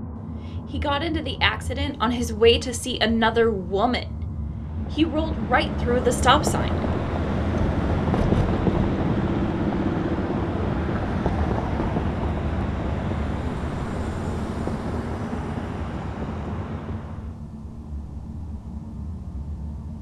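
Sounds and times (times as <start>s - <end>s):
cars passing on street: 4.2s - 18.8s.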